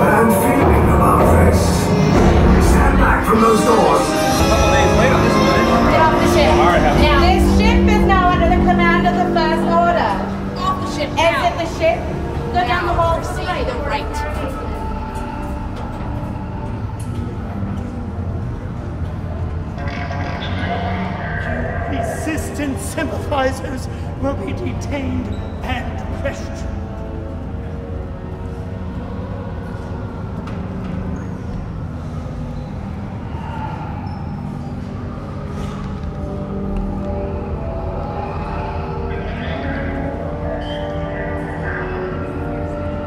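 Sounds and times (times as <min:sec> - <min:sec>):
sustained held tones: 0:00.0 - 0:23.8
deep rumbling drone: 0:00.0 - 0:43.0.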